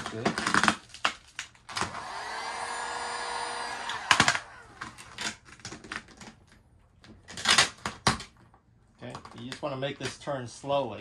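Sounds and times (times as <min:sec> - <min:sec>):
heat gun blowing: 0:01.8 - 0:05.1.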